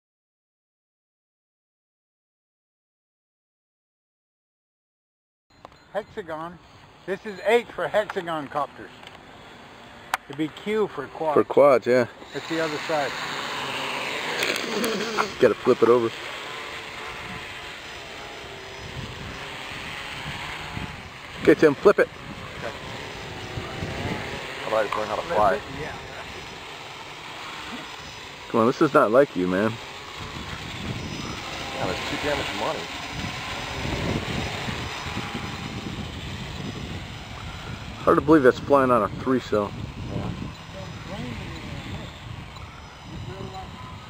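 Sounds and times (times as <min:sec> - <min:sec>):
drone propellers whirring: 0:05.5 - 0:44.0.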